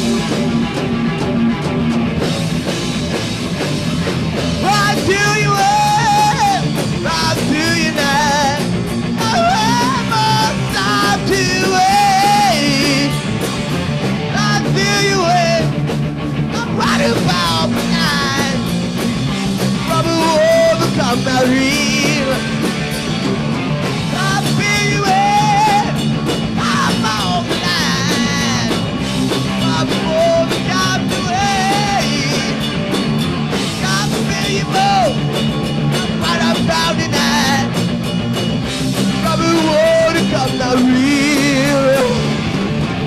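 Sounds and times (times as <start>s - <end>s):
bass: 0.0s - 43.0s
distorted electric guitars: 0.0s - 43.0s
drums: 0.0s - 43.0s.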